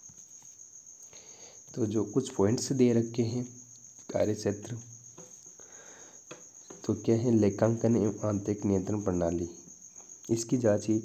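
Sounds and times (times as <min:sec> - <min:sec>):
man speaking: 0:06.8 - 0:09.6, 0:10.3 - 0:11.0.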